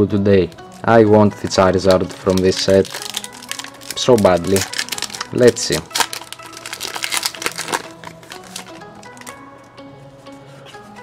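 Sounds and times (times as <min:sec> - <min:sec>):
background music: 0:00.0 - 0:11.0
foil wrapper crinkling and tearing: 0:01.5 - 0:09.4.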